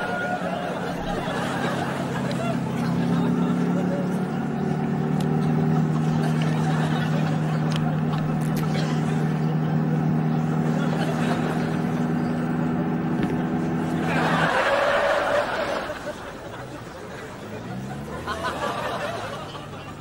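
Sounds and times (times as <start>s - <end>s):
car engine humming: 0.0s - 20.0s.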